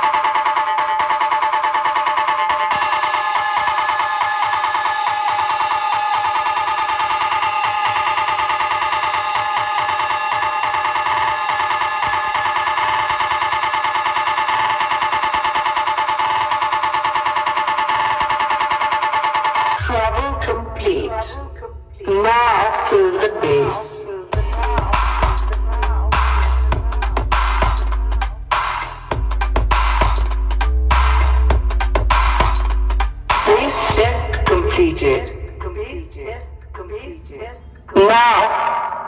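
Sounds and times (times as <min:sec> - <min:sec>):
high synth tones pulsing rapidly: 0:00.0 - 0:35.6
deep bass: 0:19.8 - 0:38.0.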